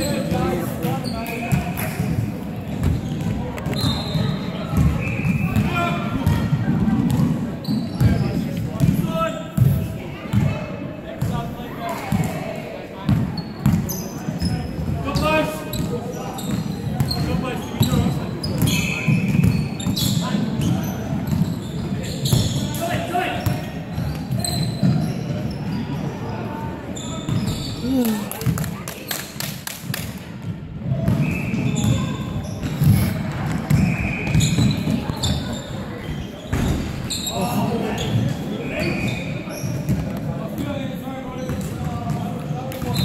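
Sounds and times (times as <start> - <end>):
sneakers squeaking: 0.0 - 11.4, 13.1 - 28.6, 30.9 - 43.0.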